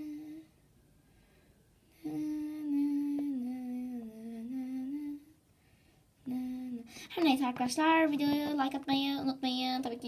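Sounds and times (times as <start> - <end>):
person humming: 0.0 - 0.6, 2.0 - 5.3, 6.2 - 7.0.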